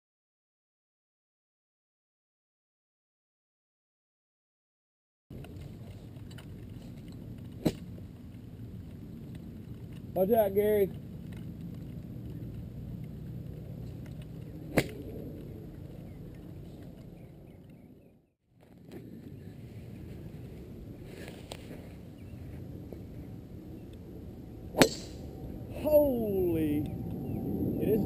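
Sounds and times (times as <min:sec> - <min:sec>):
outdoor background hum: 0:05.3 - 0:28.0
golf club striking ball: 0:07.6 - 0:07.9, 0:14.7 - 0:15.1, 0:24.7 - 0:25.4.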